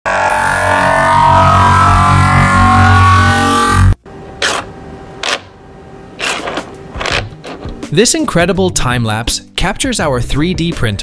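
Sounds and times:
printer whirring: 4.4s - 7.8s.

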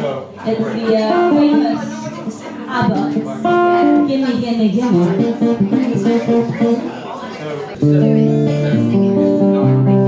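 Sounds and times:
guitar accompaniment: 0.5s - 10.0s.

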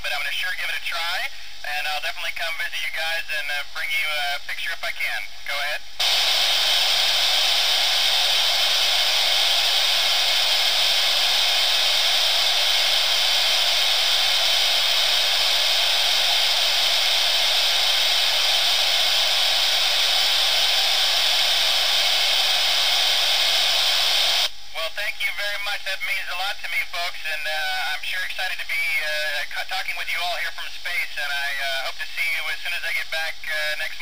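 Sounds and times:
radio receiver hiss: 0.0s - 34.0s.

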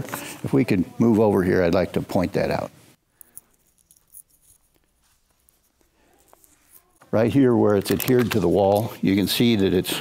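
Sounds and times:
faint clicks and rustles: 3.1s - 9.0s.

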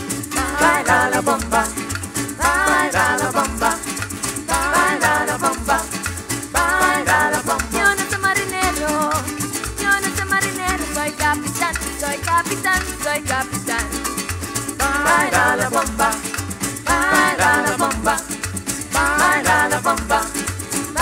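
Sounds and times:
maracas shaking: 0.0s - 21.0s
strummed cuatro and guitar: 0.0s - 21.0s
wavering melody line: 0.2s - 21.0s.

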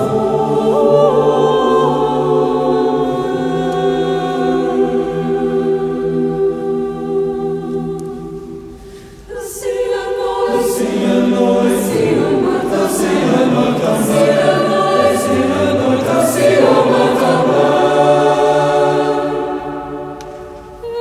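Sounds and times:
chamber choir singing: 0.0s - 21.0s.

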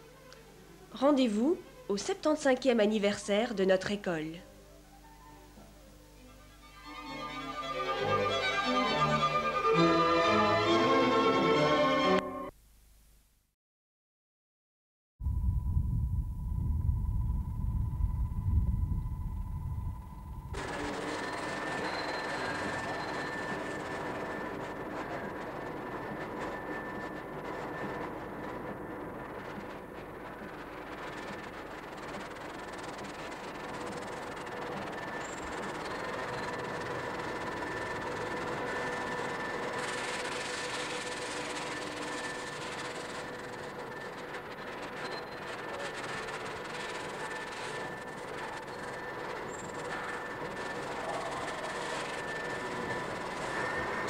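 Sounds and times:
hum tones: 15.2s - 42.2s
mechanical running noise: 15.3s - 54.0s.

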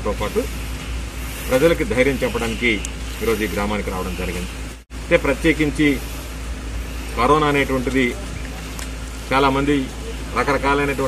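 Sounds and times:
man speaking: 0.0s - 0.6s, 1.4s - 6.1s, 7.1s - 11.0s.

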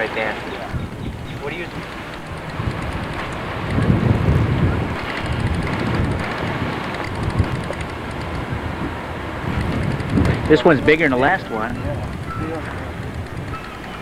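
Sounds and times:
wind buffeting microphone: 0.0s - 14.0s.

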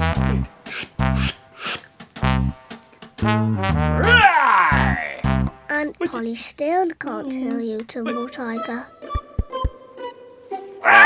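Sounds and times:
comic brass music sting: 0.0s - 4.2s.

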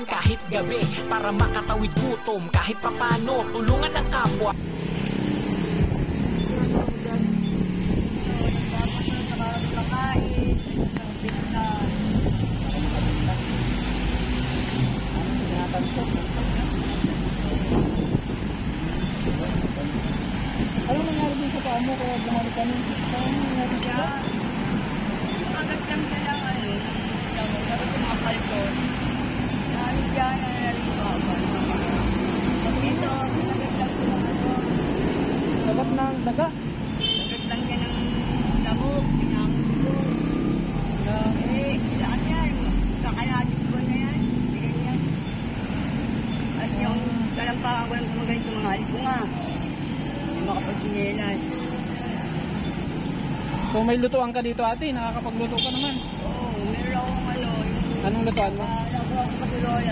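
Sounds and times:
road traffic noise: 0.0s - 59.9s
people talking: 8.2s - 12.0s, 20.8s - 24.4s, 25.1s - 28.9s, 29.7s - 31.9s, 32.6s - 35.0s, 53.7s - 59.9s.

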